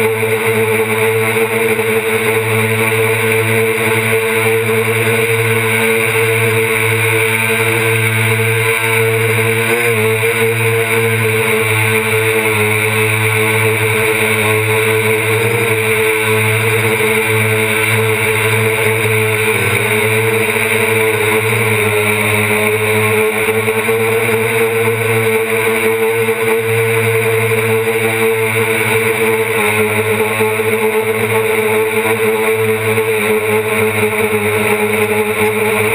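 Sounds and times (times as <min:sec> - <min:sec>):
drone motors and propellers humming: 0:00.0 - 0:35.9.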